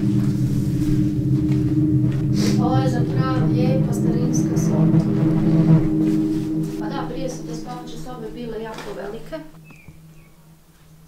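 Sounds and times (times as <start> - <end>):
held low tones: 0.0 - 9.6
low rumble: 0.0 - 9.6.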